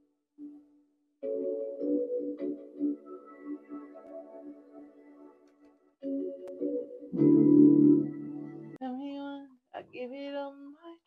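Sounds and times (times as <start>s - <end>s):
synth keyboard chord: 1.2s - 8.8s
woman singing: 8.8s - 11.0s.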